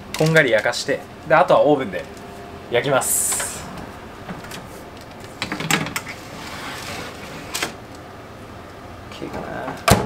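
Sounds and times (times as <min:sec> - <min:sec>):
soft sliding sound: 0:06.1 - 0:07.6.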